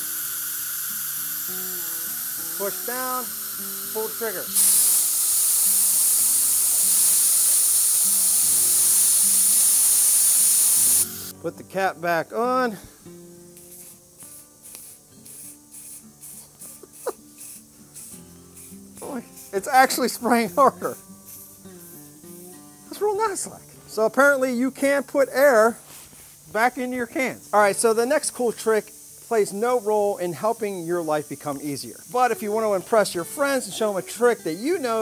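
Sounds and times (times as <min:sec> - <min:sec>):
high hiss: 0:00.0 - 0:35.0
background music with low notes: 0:11.0 - 0:25.6, 0:31.7 - 0:35.0.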